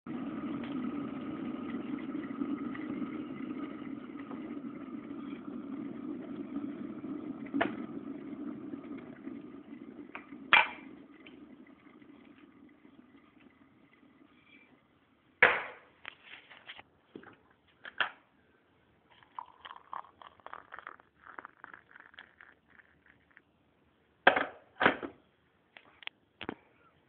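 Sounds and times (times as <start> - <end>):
electric kettle rumbling hiss: 0.1 - 15.4, 18.0 - 25.4.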